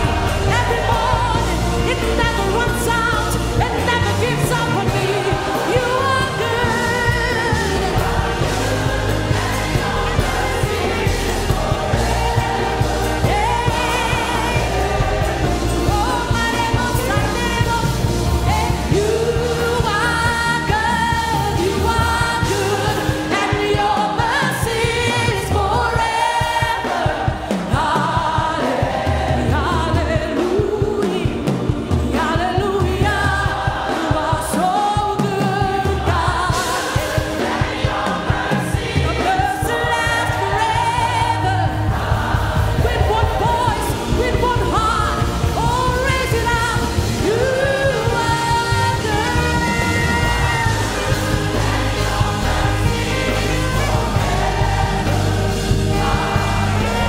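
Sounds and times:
instrumental backing: 0:00.0 - 0:24.9
voices singing gospel song: 0:00.0 - 0:57.0.

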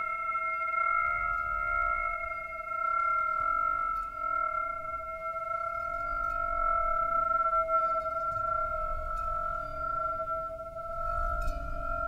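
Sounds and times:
ringing musical drone: 0:00.0 - 0:12.0.

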